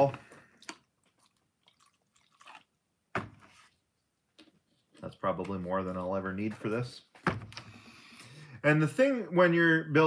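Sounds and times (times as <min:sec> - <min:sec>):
liquid poured into plastic cup: 0:00.4 - 0:02.8.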